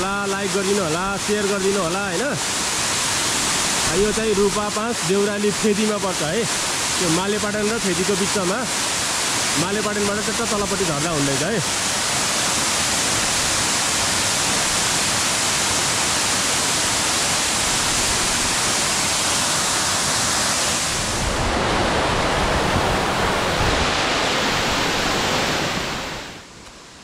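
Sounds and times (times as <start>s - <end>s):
waterfall rushing: 0.0s - 26.5s.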